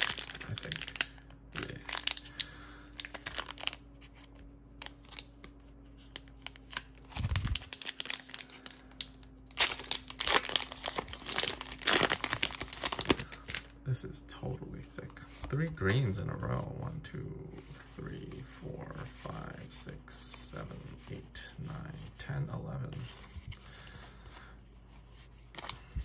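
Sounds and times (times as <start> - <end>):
foil wrapper crinkling and tearing: 0.0 - 13.7.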